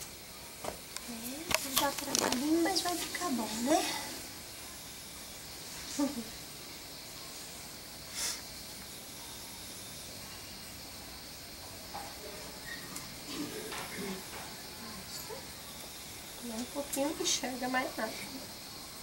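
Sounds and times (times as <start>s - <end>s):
faint voices: 0.0s - 19.0s
steady background hiss: 0.0s - 19.0s
short sharp hiss: 8.1s - 8.6s.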